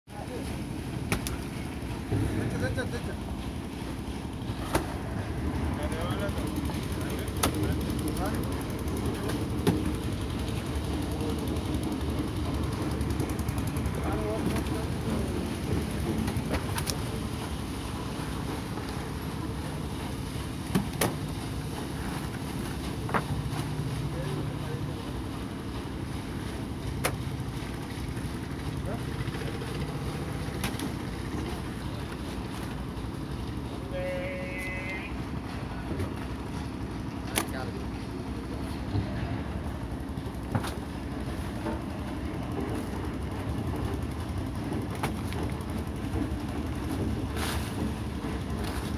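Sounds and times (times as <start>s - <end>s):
low engine rumble: 0.1s - 48.9s.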